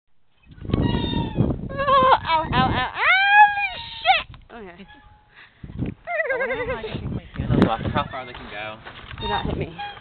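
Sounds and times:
short wavering cry: 0.8s - 5.3s.

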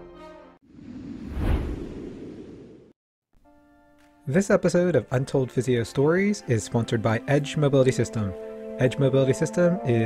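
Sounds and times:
whoosh sound effect: 0.7s - 2.9s.

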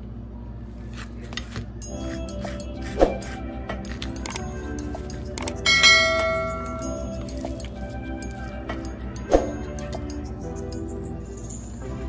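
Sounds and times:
background music with steady beat: 1.3s - 12.0s
notification bell chime: 5.6s - 7.3s.

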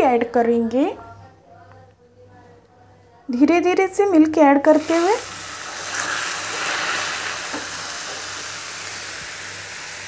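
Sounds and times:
caramel sizzling and hissing in a pan: 4.7s - 10.0s.

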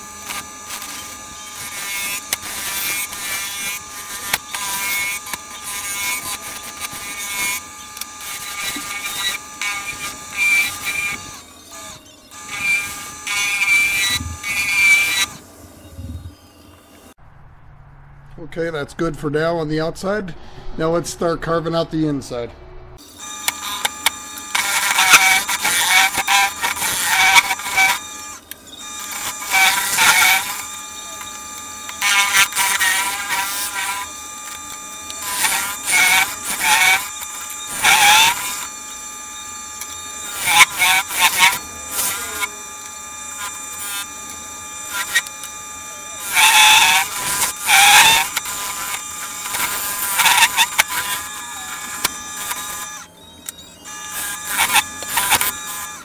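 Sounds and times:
tool cutting wood with squeal: 0.0s - 16.6s, 23.0s - 56.0s
lathe whine: 0.0s - 17.2s, 23.0s - 56.0s.

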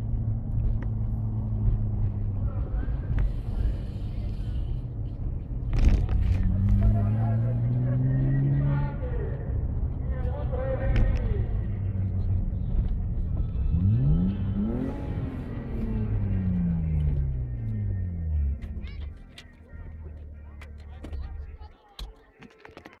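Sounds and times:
car engine revving: 0.0s - 21.6s
engine clicks: 15.5s - 23.0s.

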